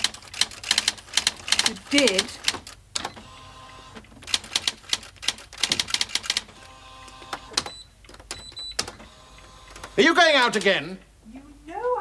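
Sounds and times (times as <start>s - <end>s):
typewriter keys clacking: 0.0s - 2.8s, 4.2s - 6.5s, 9.8s - 10.8s.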